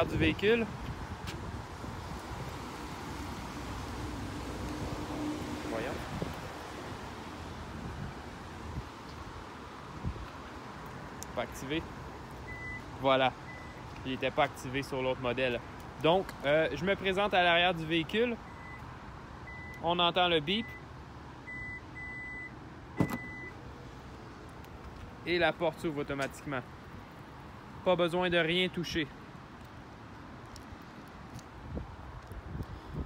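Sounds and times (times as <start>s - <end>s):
wind rumbling on microphone: 0.0s - 10.4s, 30.7s - 33.0s
high warning beeps: 12.5s - 12.9s, 21.5s - 23.5s
tailgate latch clunk: 23.0s - 23.4s.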